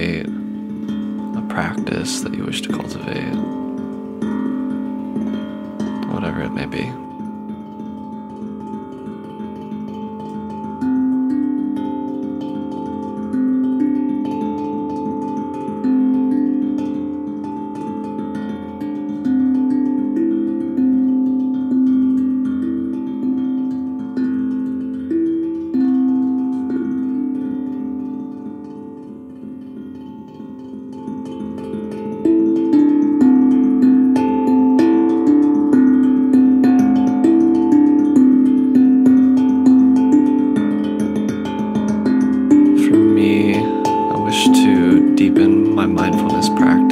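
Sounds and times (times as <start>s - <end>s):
steel tongue drum notes: 0.0s - 46.9s.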